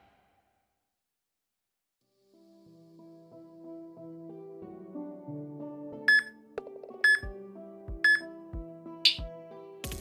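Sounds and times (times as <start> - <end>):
countdown beeps: 6.1 - 6.3, 7.0 - 7.3, 8.0 - 8.3.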